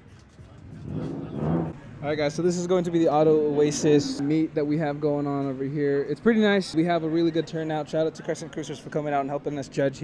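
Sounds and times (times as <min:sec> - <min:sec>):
car engine revving: 0:00.5 - 0:02.1.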